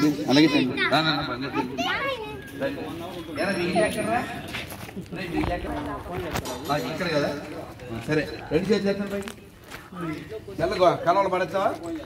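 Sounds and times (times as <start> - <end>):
children chattering: 0.0 - 8.8.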